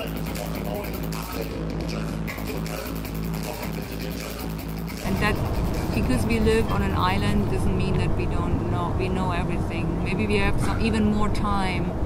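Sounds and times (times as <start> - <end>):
deep bass electronic music: 0.0 - 8.6.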